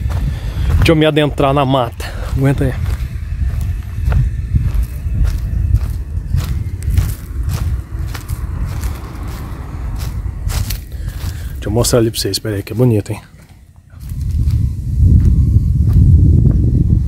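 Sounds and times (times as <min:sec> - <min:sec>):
footsteps through dry leaves: 0:00.0 - 0:13.4
low microphone rumble: 0:00.0 - 0:17.0.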